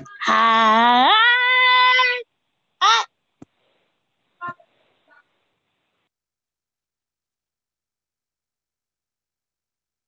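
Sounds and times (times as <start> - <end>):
woman's shrill shout: 0.0 - 2.2, 2.8 - 3.1
woman's shrill cry: 0.1 - 2.2.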